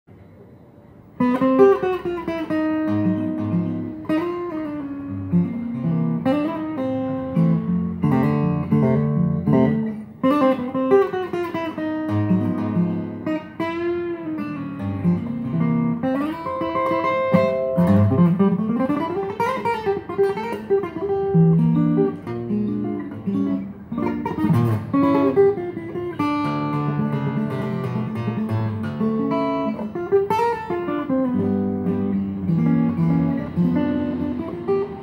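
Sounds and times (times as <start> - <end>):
fingerstyle acoustic guitar: 1.2 - 35.0.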